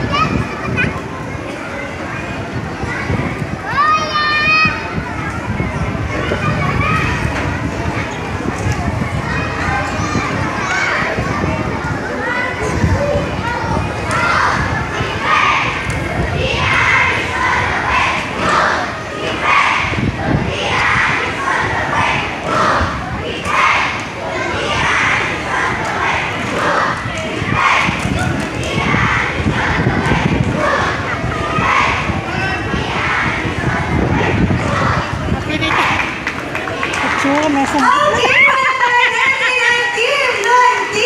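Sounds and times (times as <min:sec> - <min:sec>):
boys shouting a cheer: 0:00.0 - 0:07.4, 0:09.2 - 0:41.0
children chattering: 0:00.0 - 0:41.0
children's high-pitched shouts: 0:02.8 - 0:07.4, 0:36.9 - 0:41.0.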